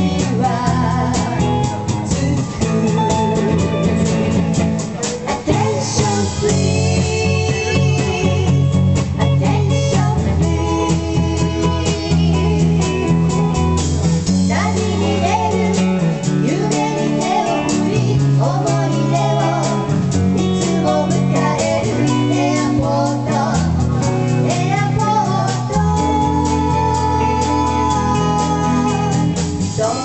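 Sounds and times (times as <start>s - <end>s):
women singing: 0.0s - 4.3s, 5.1s - 13.7s, 14.3s - 30.0s
rock band playing: 0.0s - 30.0s.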